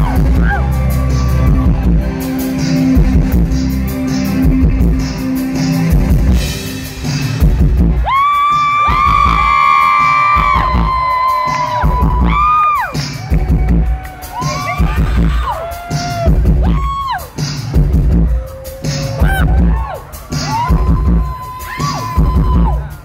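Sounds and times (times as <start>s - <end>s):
crowd cheering and screaming: 0.0s - 2.9s, 7.9s - 23.0s
live band playing: 0.0s - 23.0s.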